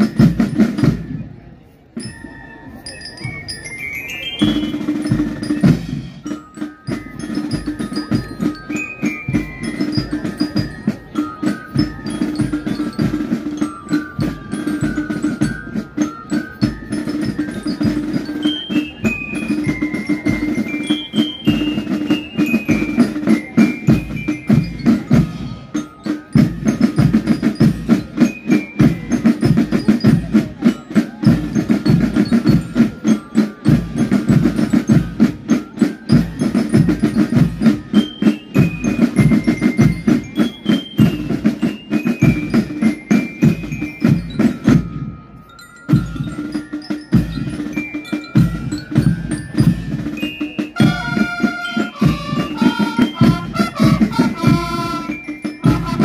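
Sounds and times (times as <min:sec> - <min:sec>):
snare and bass drums: 0:00.0 - 0:01.4, 0:04.4 - 0:45.1, 0:45.9 - 0:56.0
bell lyre melody: 0:00.0 - 0:56.0.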